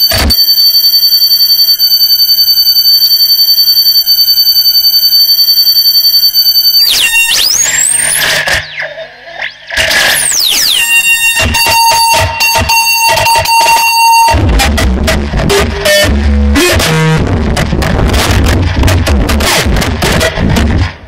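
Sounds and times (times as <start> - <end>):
fluttering high electronic tones: 6.8 - 14.5
electronic pitch glides: 6.8 - 20.4.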